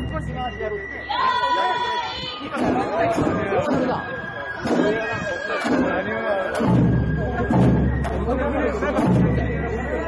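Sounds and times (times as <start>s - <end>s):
festival flute music: 0.0s - 10.0s
people chatting: 0.0s - 10.0s
sharp drum strikes: 2.6s - 10.0s.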